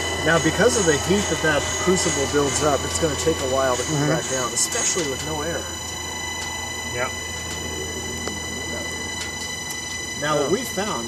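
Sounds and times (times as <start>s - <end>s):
high-pitched whine: 0.0s - 11.0s
low machine hum: 0.0s - 11.0s.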